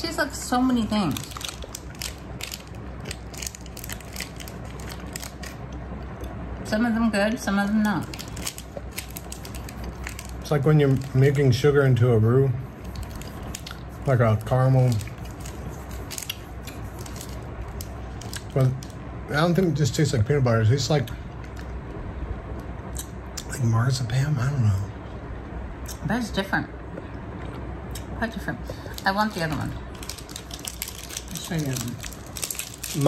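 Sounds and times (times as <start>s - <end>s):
person chewing sticky candy: 1.2s - 6.4s, 8.1s - 11.2s, 12.8s - 18.9s, 28.7s - 33.0s.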